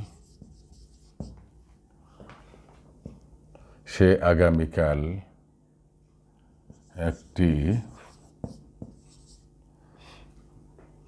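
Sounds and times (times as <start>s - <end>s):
marker pen scratching on whiteboard: 0.0s - 1.5s, 6.7s - 9.5s.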